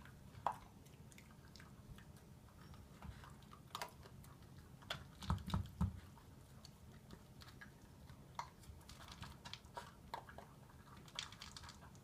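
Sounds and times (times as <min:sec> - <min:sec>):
dog teeth clicking on plastic bowl: 0:04.8 - 0:06.0, 0:08.4 - 0:12.0.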